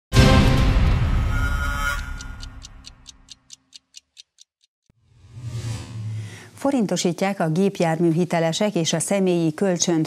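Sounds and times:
theme music: 0.1 - 3.3
clock ticking: 1.9 - 4.7.

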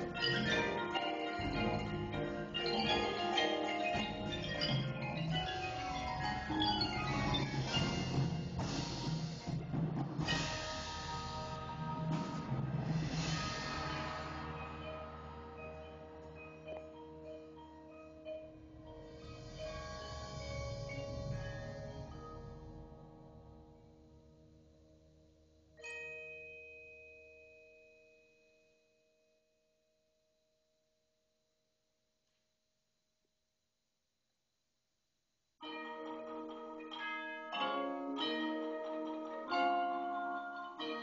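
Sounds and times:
percussion ensemble playing: 0.0 - 23.6.

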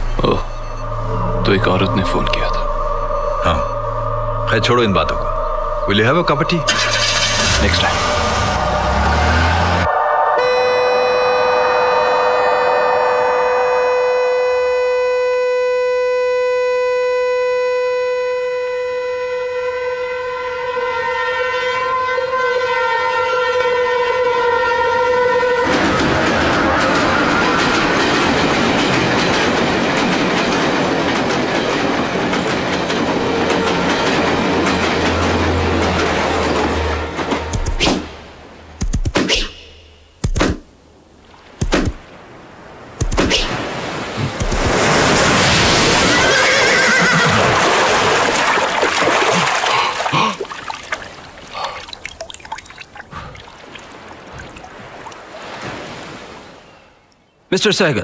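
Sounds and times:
train horn long note: 8.6 - 27.2, 33.4 - 37.6
train passing with rushing clatter: 23.0 - 38.8, 44.3 - 48.8.

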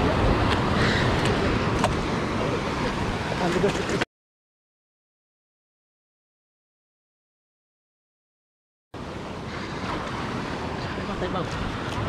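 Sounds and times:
sea surf breaking against rocks: 0.0 - 4.0, 9.0 - 12.0.

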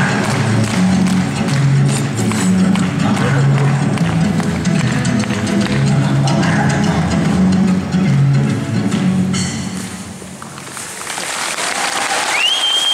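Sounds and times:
audience applause: 10.6 - 12.9.

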